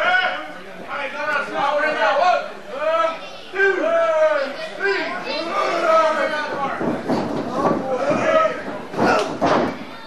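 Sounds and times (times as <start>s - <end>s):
crowd shouting: 1.7s - 6.8s, 7.5s - 10.0s
body hitting wrestling ring: 6.5s - 10.0s.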